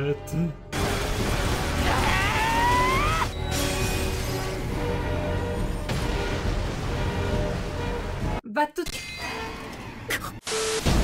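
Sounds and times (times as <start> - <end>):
music: 0.0 - 11.0
explosion rumbling: 5.8 - 8.3.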